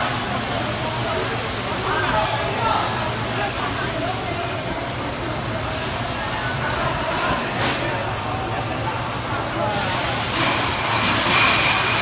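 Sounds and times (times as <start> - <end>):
murmur of voices: 0.0 - 10.5.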